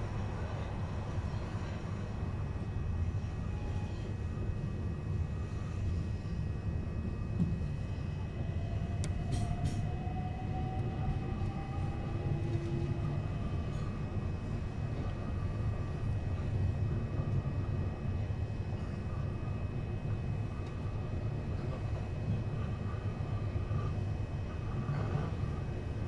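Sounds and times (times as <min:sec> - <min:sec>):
train interior low rumble: 0:00.0 - 0:26.0.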